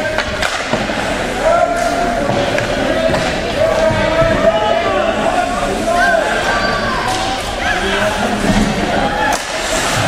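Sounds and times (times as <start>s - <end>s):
spectators' voices: 0.0s - 10.0s
stick hitting puck: 0.1s - 1.0s, 1.8s - 3.9s.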